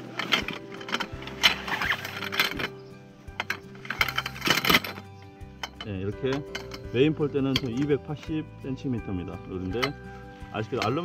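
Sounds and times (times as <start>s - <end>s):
background music: 0.0s - 11.0s
metal poles clinking: 0.0s - 11.0s.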